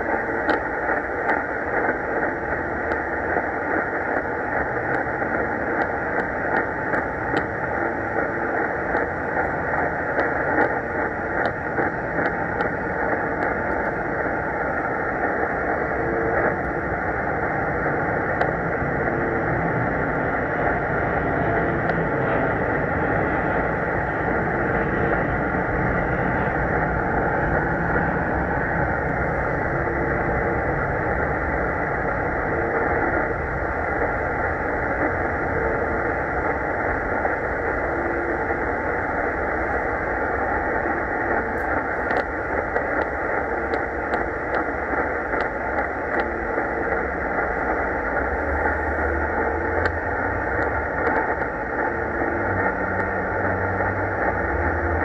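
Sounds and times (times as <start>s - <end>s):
faint crackles: 0.0s - 55.0s
shortwave radio static hiss: 0.0s - 55.0s.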